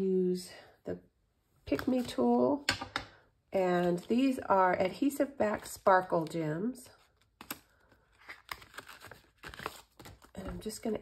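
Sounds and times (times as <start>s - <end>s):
plastic cover crinkling: 7.0s - 10.7s.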